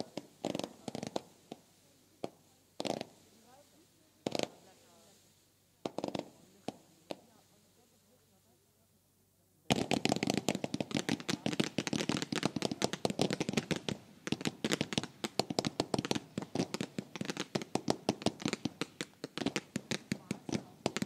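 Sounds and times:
fireworks cracks and bangs: 0.0 - 7.9, 9.7 - 21.0.

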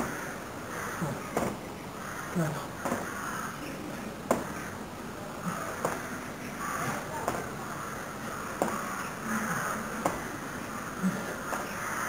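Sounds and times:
man grunting with exertion: 1.0 - 1.3, 2.3 - 2.8, 11.0 - 11.5.

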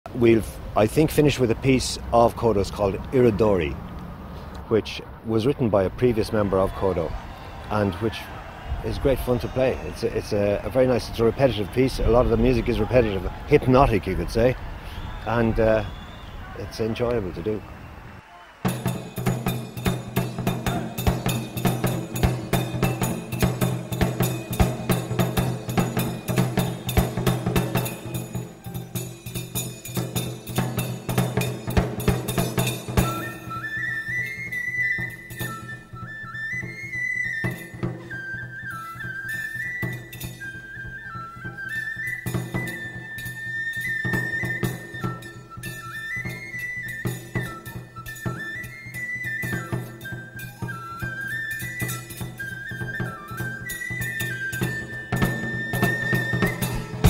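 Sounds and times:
taiko drums beating: 18.6 - 33.6, 36.5 - 38.2, 54.0 - 57.0
high melody line: 53.3 - 57.0.

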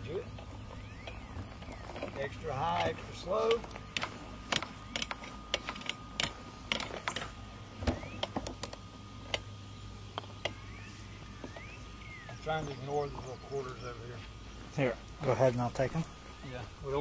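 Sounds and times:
putter striking golf balls: 0.0 - 13.8.

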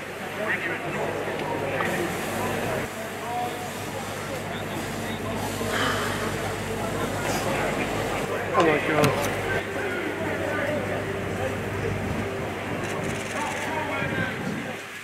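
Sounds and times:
people chattering: 0.0 - 15.0
steady low hum: 0.6 - 14.8.

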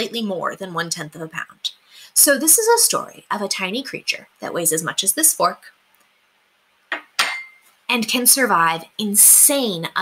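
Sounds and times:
fork knocking on surface: 6.9 - 7.6
metal fork clinking on surface: 7.0 - 7.7.

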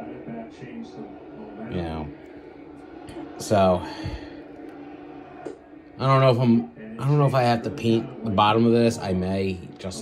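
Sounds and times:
television sound: 0.0 - 10.0.

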